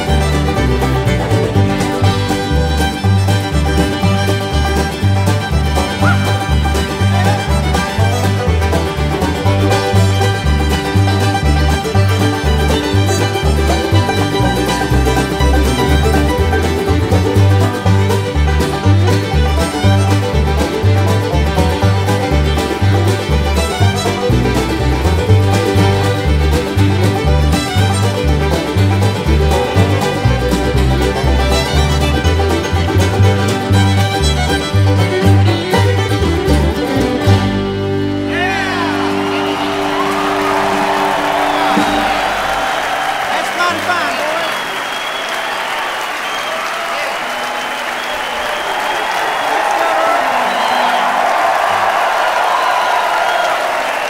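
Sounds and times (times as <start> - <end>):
guitar: 0.0 - 43.0
bass line: 0.0 - 43.2
banjo: 0.0 - 43.7
fiddle: 0.0 - 45.5.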